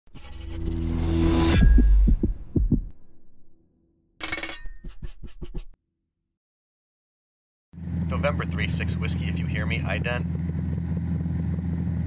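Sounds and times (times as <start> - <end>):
intro music: 0.4 - 3.6
low thumps: 1.3 - 3.6.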